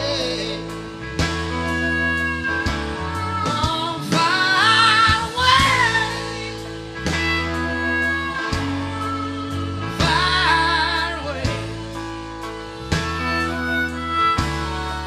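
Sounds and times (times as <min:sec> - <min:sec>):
person singing: 0:00.0 - 0:01.0, 0:01.7 - 0:12.0
bass line: 0:00.0 - 0:15.0
country song with guitar: 0:00.0 - 0:15.0.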